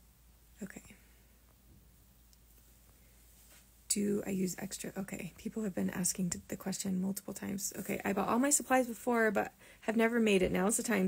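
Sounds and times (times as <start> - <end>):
woman whispering: 0.6 - 1.1.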